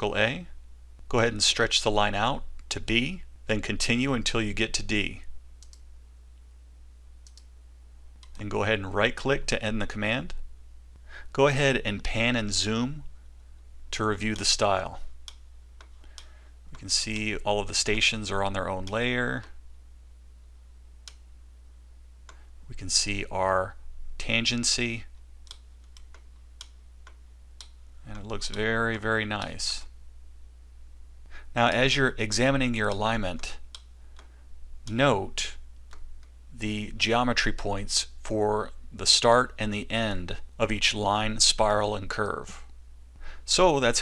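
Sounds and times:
low electrical hum: 0.0s - 44.0s
microphone hiss: 0.0s - 44.0s
computer mouse clicks: 5.6s - 5.9s, 7.2s - 7.5s, 21.0s - 21.2s, 25.4s - 27.8s.

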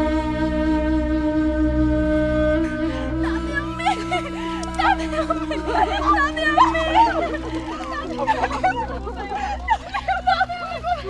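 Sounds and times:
held background music tone: 0.0s - 11.0s
people shouting: 4.3s - 10.2s.

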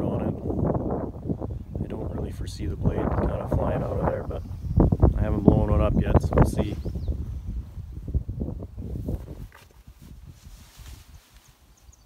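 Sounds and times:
microphone handling noise: 0.0s - 11.5s
wind noise on microphone: 0.0s - 12.0s.

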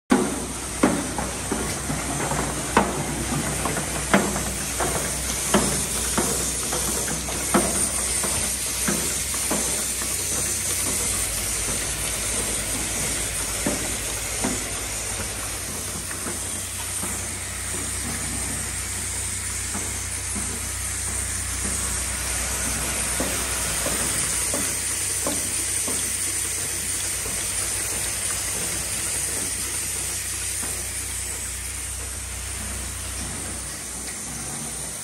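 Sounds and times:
machine hiss and low hum: 0.1s - 35.0s
machine mechanical knocks: 0.1s - 35.0s.

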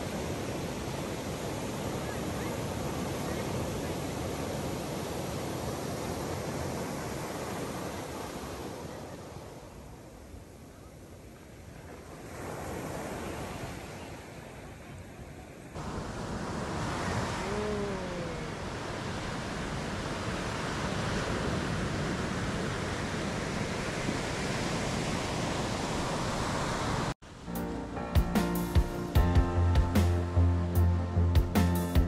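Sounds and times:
ocean surf washing up beach: 0.0s - 28.0s.

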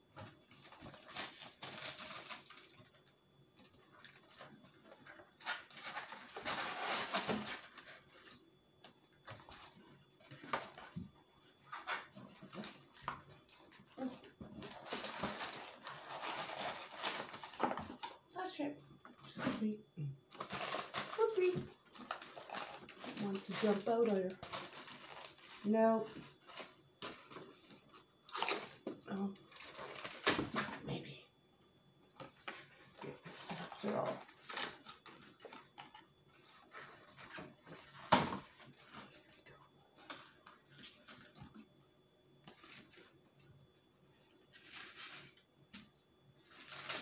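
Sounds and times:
paperboard box rustling and crinkling: 0.1s - 18.2s, 20.3s - 30.9s, 32.2s - 41.8s, 44.1s - 45.4s, 46.4s - 47.0s.

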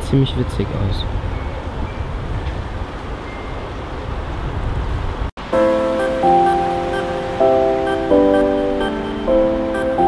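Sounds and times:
background music held chords: 5.4s - 10.0s.

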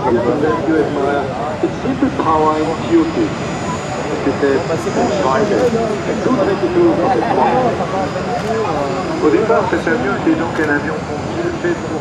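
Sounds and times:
jet engines rushing overhead: 0.0s - 12.0s
people talking: 0.0s - 12.0s.

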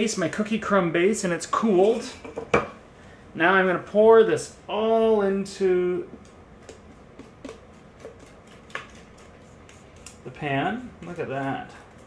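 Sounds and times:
spatula scraping metal bowl: 6.8s - 12.0s.

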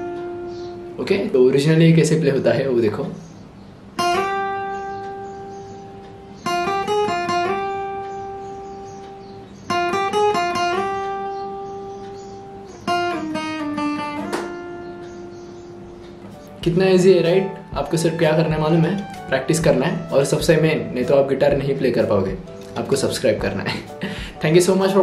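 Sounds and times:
acoustic guitar slow melody: 0.0s - 1.0s, 3.2s - 25.0s.

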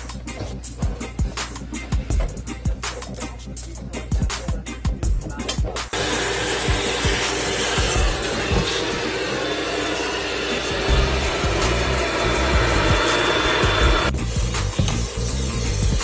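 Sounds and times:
background music with beat: 0.0s - 16.0s
vacuum running with thin whine: 6.0s - 14.1s.

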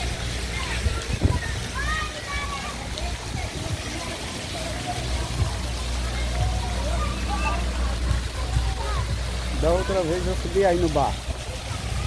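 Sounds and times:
faint voices: 0.0s - 12.0s
fountain splashing into pool: 0.0s - 12.0s.

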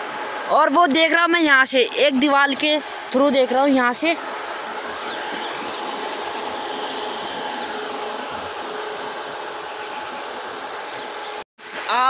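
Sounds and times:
faint hum: 0.0s - 12.0s
steady whirring: 1.4s - 11.4s.

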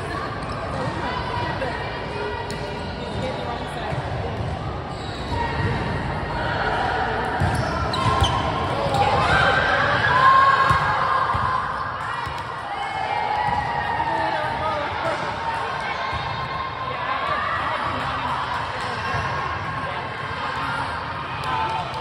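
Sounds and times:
players' voices echoing: 0.0s - 22.0s
volleyball bouncing on gym floor: 10.6s - 12.6s.

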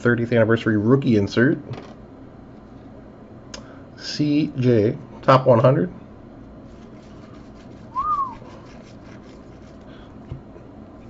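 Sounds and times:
short whistle-like note: 7.9s - 8.6s.

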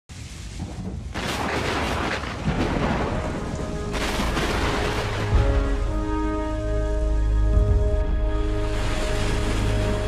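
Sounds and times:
steady rain: 0.1s - 10.0s
low rumble of thunder: 0.5s - 5.8s.

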